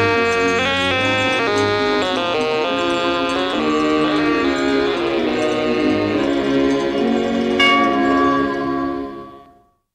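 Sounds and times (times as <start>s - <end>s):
held musical chord: 0.0s - 9.8s
bell ringing: 3.6s - 9.8s.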